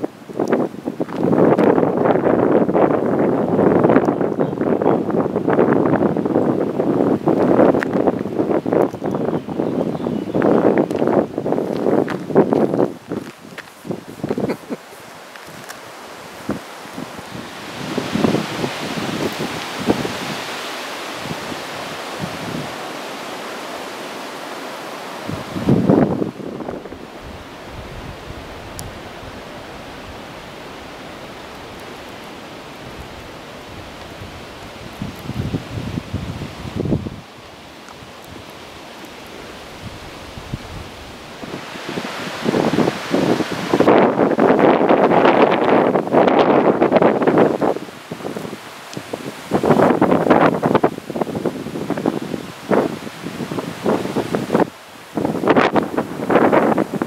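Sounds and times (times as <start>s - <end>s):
wind buffeting microphone: 0.0s - 22.8s, 25.2s - 57.0s
leaves rustling in wind: 0.0s - 57.0s.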